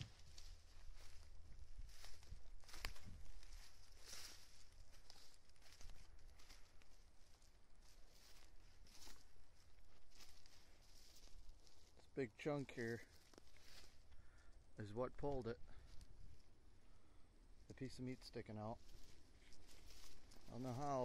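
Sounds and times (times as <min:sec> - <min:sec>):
twigs brushing: 0:00.0 - 0:12.0, 0:13.1 - 0:14.4, 0:18.8 - 0:21.0
footsteps crunching dry leaves: 0:00.0 - 0:12.1, 0:12.8 - 0:14.2, 0:18.7 - 0:21.0.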